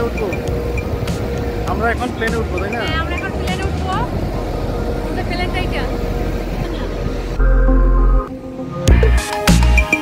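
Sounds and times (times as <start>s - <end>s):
woman speaking: 2.8s - 4.2s, 5.1s - 6.0s.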